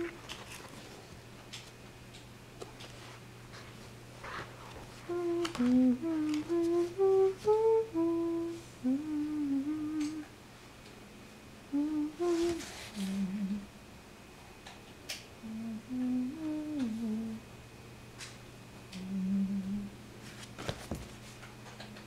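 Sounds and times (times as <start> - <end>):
person humming a tune: 0.0 - 0.3, 5.0 - 10.3, 11.7 - 13.7, 15.4 - 17.4, 18.9 - 20.0
faint low hum: 0.0 - 22.0.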